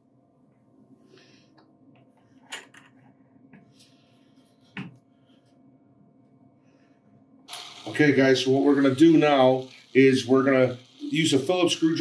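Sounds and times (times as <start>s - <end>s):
inkjet printer humming: 7.5s - 12.0s
man speaking: 7.8s - 12.0s.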